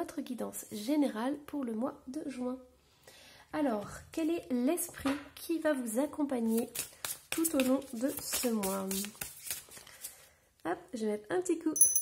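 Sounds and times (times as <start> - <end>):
woman speaking: 0.0 - 2.7, 3.6 - 6.7, 7.4 - 9.1, 10.7 - 12.0
card deck rustling and clicking: 6.8 - 10.1.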